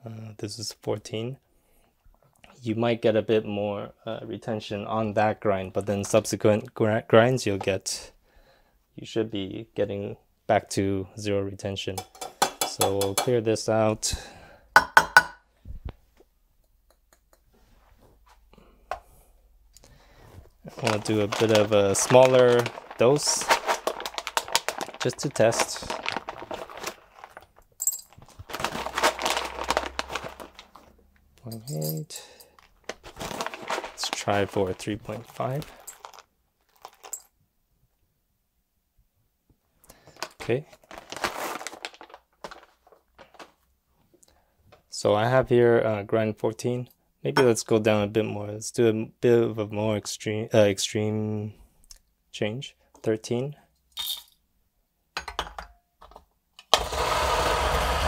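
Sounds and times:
metal cup knocks and clinks: 0:12.0 - 0:13.3, 0:14.8 - 0:15.4, 0:55.2 - 0:55.8
coffee beans rattling in metal cup: 0:20.7 - 0:30.8.

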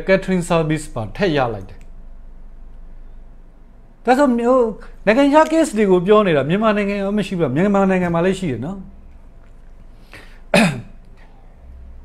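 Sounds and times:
man clearing throat: 0:10.5 - 0:11.0.

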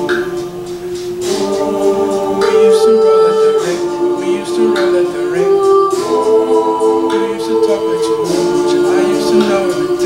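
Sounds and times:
a cappella group singing: 0:00.0 - 0:10.0.

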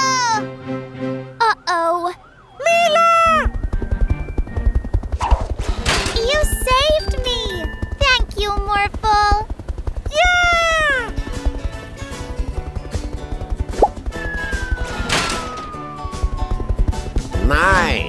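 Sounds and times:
long falling whistle: 0:14.2 - 0:16.6.

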